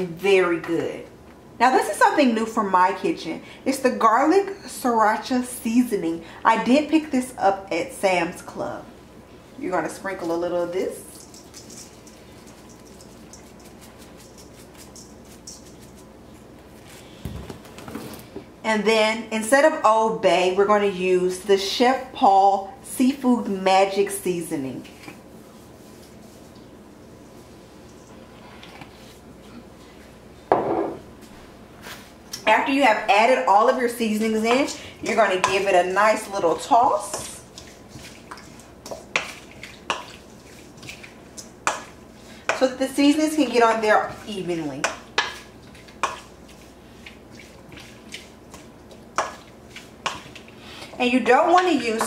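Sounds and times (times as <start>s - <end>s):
kitchenware clattering on steel bowl: 11.1s - 16.0s
quiet stirring of shrimp: 11.1s - 17.2s, 37.0s - 42.6s, 44.9s - 51.0s.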